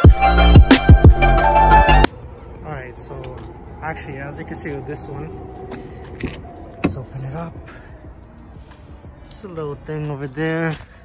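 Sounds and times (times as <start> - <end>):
music: 0.0 - 2.1, 6.9 - 11.0.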